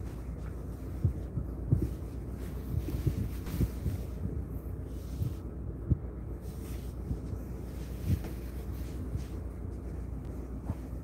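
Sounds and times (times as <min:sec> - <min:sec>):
dull low thumps: 0:00.0 - 0:11.0.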